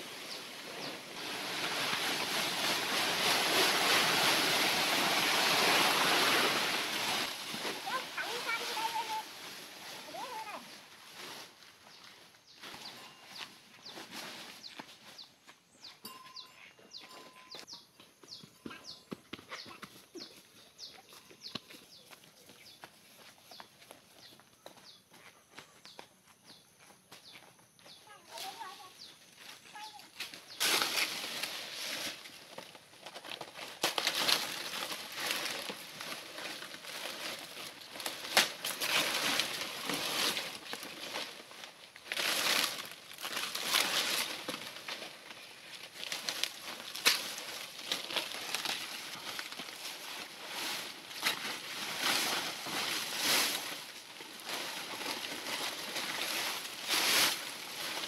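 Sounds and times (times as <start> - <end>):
palm leaves rustling: 0.0 - 15.5, 28.0 - 58.0.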